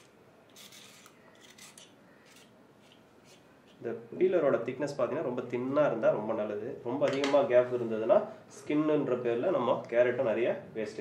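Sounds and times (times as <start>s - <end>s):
vegetable peeler scraping carrot: 0.0s - 3.4s.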